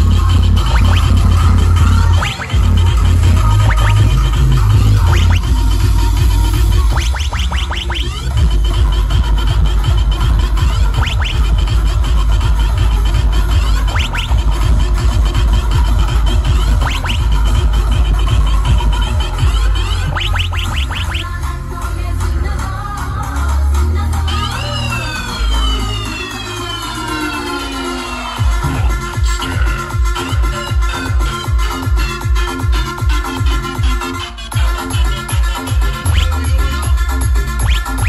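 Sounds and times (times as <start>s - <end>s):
loud electronic dance music: 0.0s - 38.0s
quick pitch sweeps: 0.6s - 5.9s, 6.5s - 8.4s, 10.6s - 11.5s, 13.7s - 14.6s, 16.6s - 17.4s, 19.9s - 21.4s, 37.6s - 38.0s.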